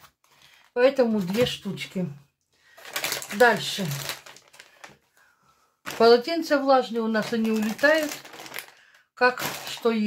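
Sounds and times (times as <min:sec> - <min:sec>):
plastic packaging rustling: 0:00.0 - 0:02.0, 0:02.6 - 0:10.0.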